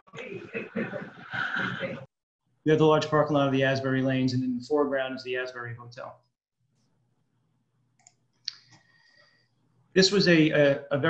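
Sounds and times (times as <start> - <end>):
faint clicks: 8.0 - 9.0.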